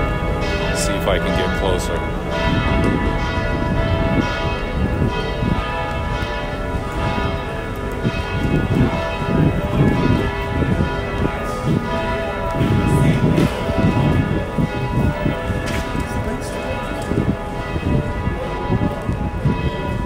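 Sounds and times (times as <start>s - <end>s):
church bells ringing: 0.0s - 20.0s
city street rumble: 0.0s - 20.0s.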